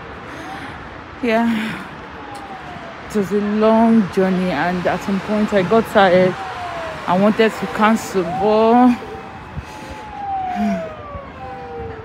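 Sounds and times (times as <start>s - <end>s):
emergency siren wailing: 0.0s - 12.0s.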